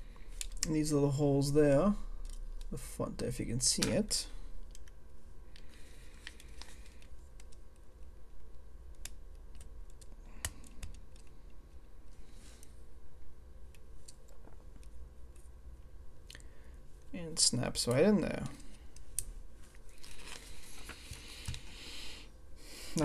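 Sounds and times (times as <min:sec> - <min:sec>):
low steady hum: 0:00.0 - 0:23.0.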